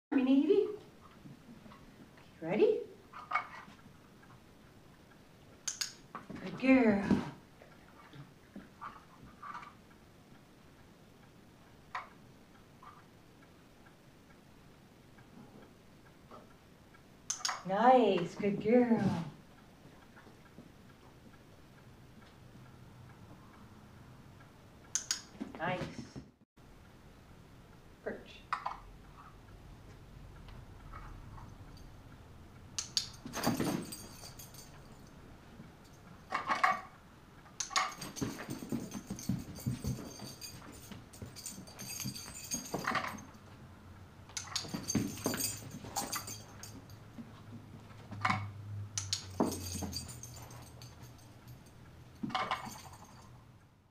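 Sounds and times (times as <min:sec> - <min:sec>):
collar tags jingling: 0:32.8 - 0:36.9, 0:37.6 - 0:43.7, 0:44.3 - 0:53.5
dog paws padding on rubber: 0:37.9 - 0:43.2.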